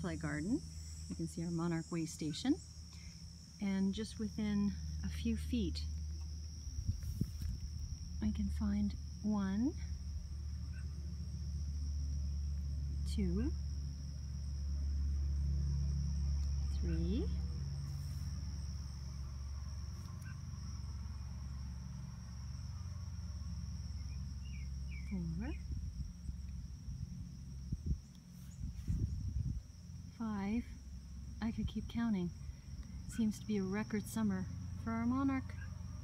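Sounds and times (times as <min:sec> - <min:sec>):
crickets trilling: 0:00.0 - 0:36.0
low rumble: 0:00.0 - 0:36.0.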